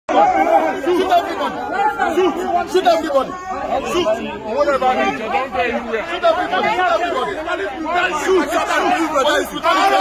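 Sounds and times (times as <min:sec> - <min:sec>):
men shouting over one another: 0:00.1 - 0:10.0.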